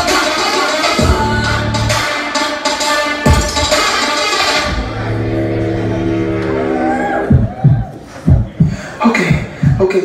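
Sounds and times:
dance track: 0.0s - 10.0s
higher tone swooping upward: 4.6s - 7.6s
low held note with overtones: 4.7s - 7.2s.

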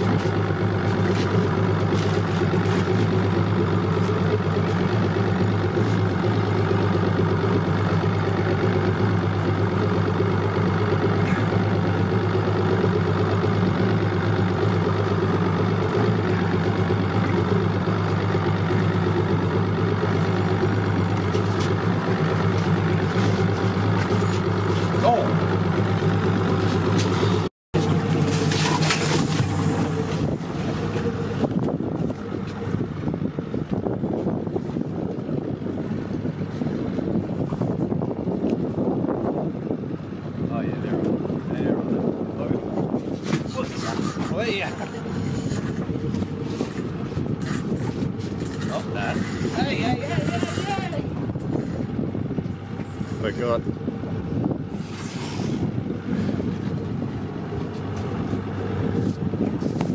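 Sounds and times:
boat engine idling: 0.0s - 59.9s
water noise: 0.0s - 59.9s
wind: 0.0s - 59.9s.

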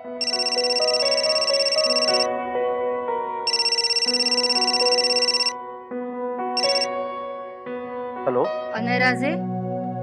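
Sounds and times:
soft background music: 0.0s - 10.0s
warbling electronic telephone ring: 0.2s - 2.3s, 3.5s - 5.6s, 6.6s - 6.9s.

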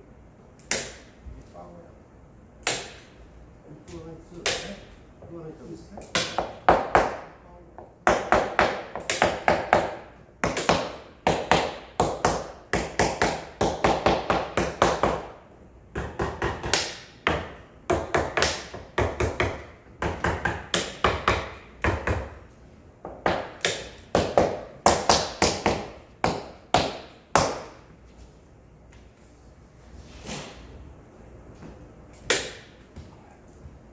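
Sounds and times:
hammer tapping on wooden panel: 6.0s - 22.4s, 23.0s - 27.8s.

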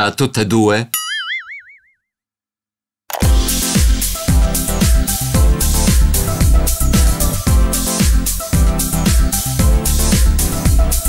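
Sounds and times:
cartoon boing: 1.0s - 2.0s.

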